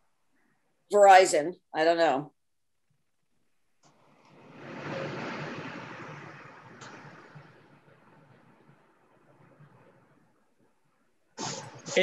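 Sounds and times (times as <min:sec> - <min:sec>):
rush of noise: 0:03.8 - 0:12.0.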